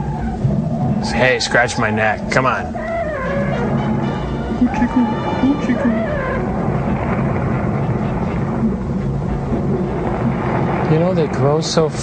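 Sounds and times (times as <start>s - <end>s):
low rumble with droning hum: 0.0s - 12.0s.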